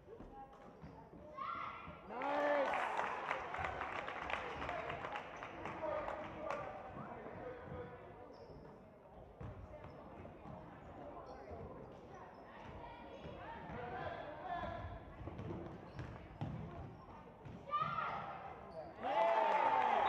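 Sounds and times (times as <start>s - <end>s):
voices of players and spectators: 0.0s - 20.0s.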